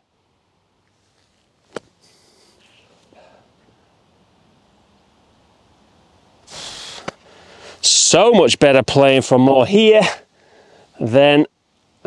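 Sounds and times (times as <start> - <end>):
sand scuffing hiss: 0.8 - 3.4, 6.4 - 8.0.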